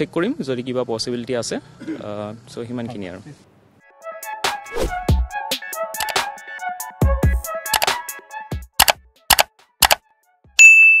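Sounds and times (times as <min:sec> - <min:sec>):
mouse clicks: 0:07.7 - 0:07.9, 0:08.8 - 0:10.0
notification bell ding: 0:10.6 - 0:11.0.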